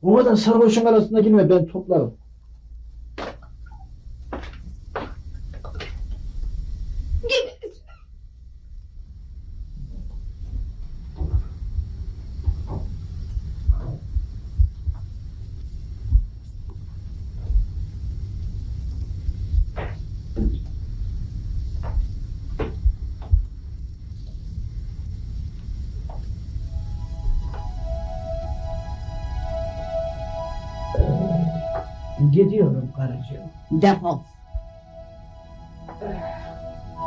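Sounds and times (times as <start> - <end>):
steady low hum: 0.0 - 37.0
footsteps on staircase: 4.3 - 6.1, 21.8 - 23.5
music with held notes: 26.7 - 37.0.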